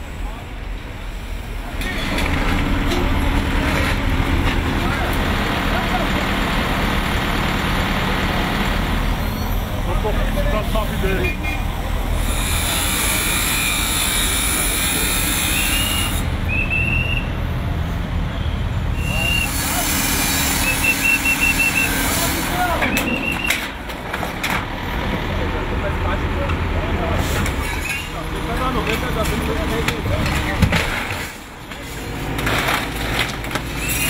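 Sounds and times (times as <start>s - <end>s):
voices: 0.0s - 13.5s, 19.0s - 34.0s
excavator engine running: 0.6s - 11.0s, 19.2s - 33.8s
angle grinder cutting steel: 12.2s - 16.3s, 19.1s - 22.5s.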